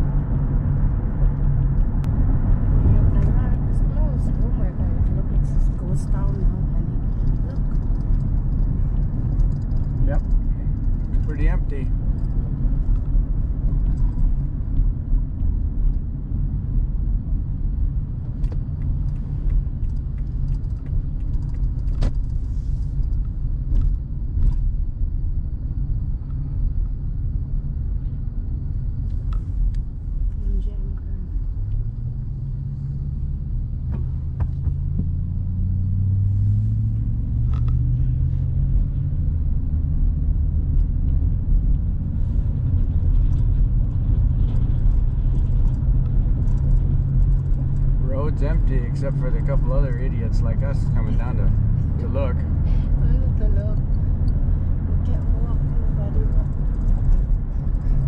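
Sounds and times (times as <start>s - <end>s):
car engine and tyres rumbling: 0.0s - 58.0s.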